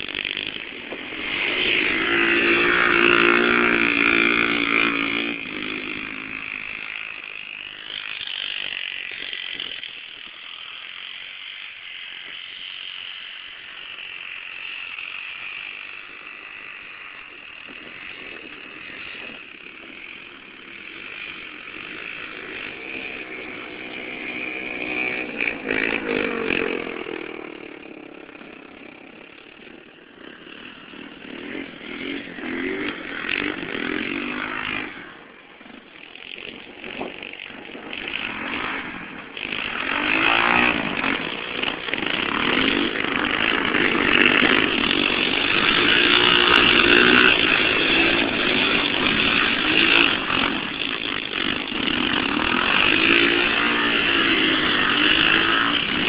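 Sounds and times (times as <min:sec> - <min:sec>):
quad engines running hard: 0:00.0 - 0:56.0.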